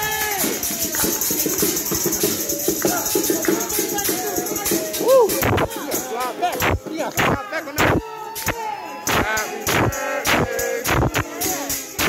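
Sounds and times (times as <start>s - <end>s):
party music: 0.0s - 12.0s.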